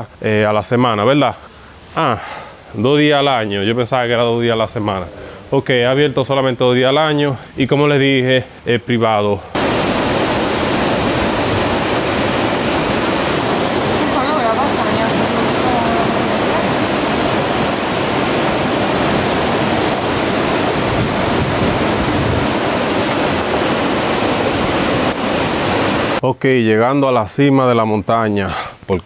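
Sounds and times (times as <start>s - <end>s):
river water rushing: 9.6s - 26.2s.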